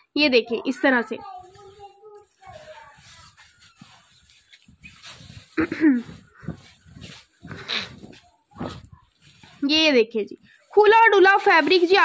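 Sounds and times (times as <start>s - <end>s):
fabric rustling: 0.8s - 12.0s.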